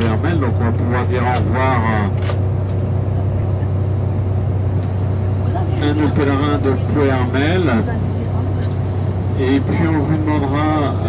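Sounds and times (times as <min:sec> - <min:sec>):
bus engine drone: 0:00.0 - 0:11.0.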